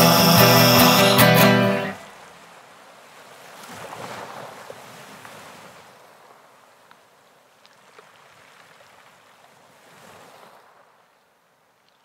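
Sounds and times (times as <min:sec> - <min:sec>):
rock music: 0:00.0 - 0:02.0
faint sea waves: 0:00.0 - 0:12.0.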